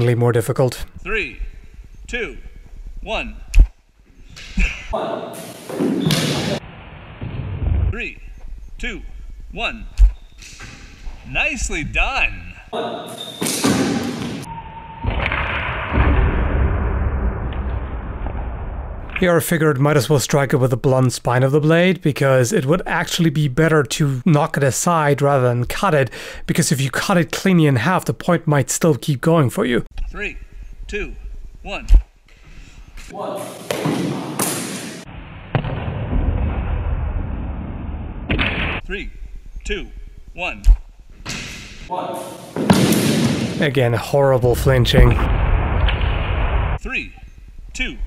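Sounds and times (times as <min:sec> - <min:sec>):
steady low rumble: 0:00.8 - 0:03.8, 0:06.6 - 0:10.2, 0:11.0 - 0:12.7, 0:30.0 - 0:32.1, 0:43.6 - 0:48.0
gymnasium hall background noise: 0:04.6 - 0:06.8, 0:12.7 - 0:14.5, 0:33.0 - 0:35.2, 0:41.2 - 0:43.8.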